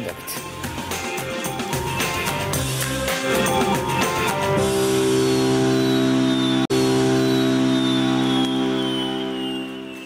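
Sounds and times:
held electronic chord: 0.4s - 10.0s
high tone sliding downward: 1.2s - 10.0s.

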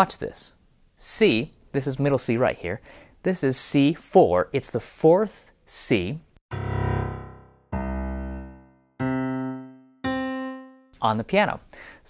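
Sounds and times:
piano single notes: 6.5s - 11.0s.

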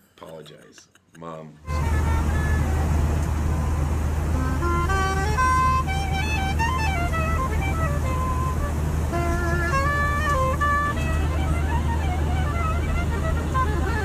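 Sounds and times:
soprano saxophone melody: 1.6s - 14.0s
airliner cabin drone: 1.7s - 14.0s.

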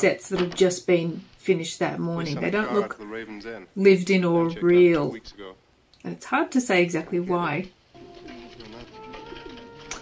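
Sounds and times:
held music chord: 8.0s - 10.0s.

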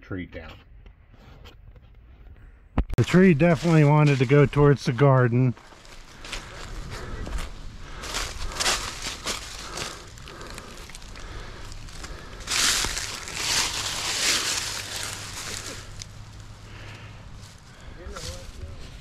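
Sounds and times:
footsteps crunching through dry leaves: 3.0s - 19.0s.

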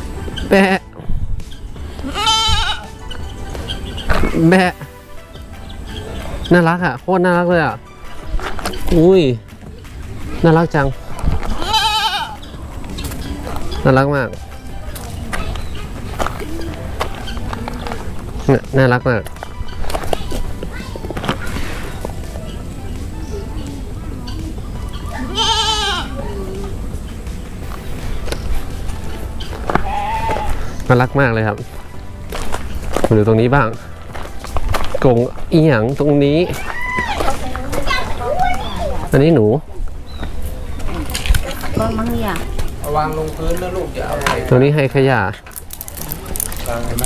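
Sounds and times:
young goat bleating: 2.0s - 2.9s, 11.5s - 12.4s, 25.2s - 26.2s, 29.8s - 30.6s.

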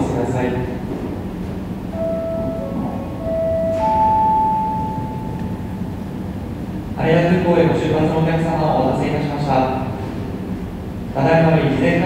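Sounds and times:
low terminal hum: 0.0s - 12.0s
bell-like public address chime: 1.9s - 5.7s.

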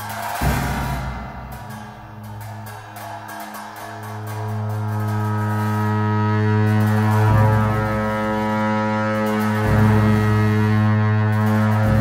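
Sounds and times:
low sustained drone: 0.0s - 12.0s.

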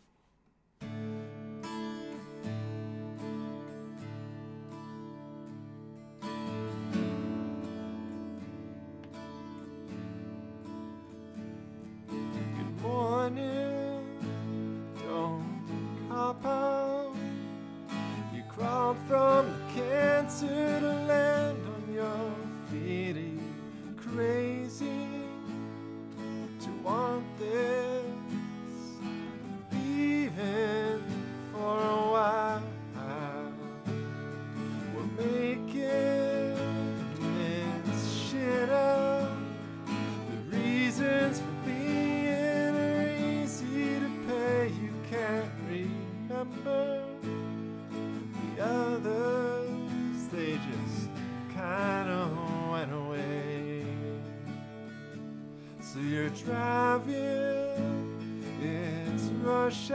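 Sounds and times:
acoustic guitar strumming: 0.8s - 59.9s
man singing: 12.4s - 47.5s, 48.2s - 54.6s, 55.8s - 59.9s.

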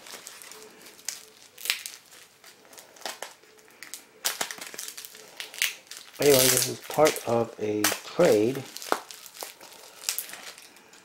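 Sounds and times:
plastic wrapping crinkling: 0.0s - 11.0s.

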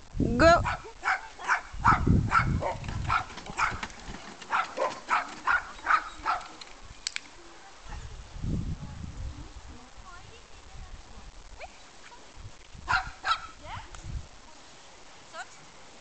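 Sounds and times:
large dog barking: 0.6s - 6.6s, 12.9s - 13.6s
dog running on a walkway: 2.4s - 6.9s.

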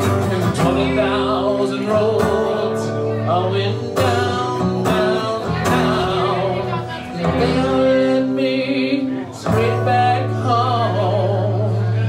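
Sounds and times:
acoustic guitar strumming: 0.0s - 12.0s
man singing: 0.0s - 12.0s.

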